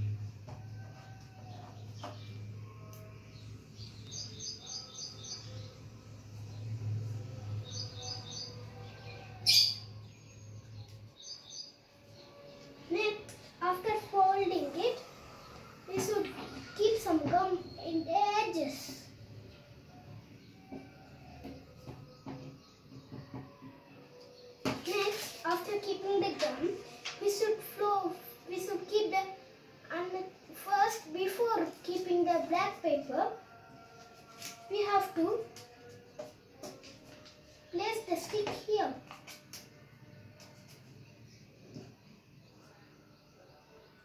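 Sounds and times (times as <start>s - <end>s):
knock on table: 20.7s - 23.6s.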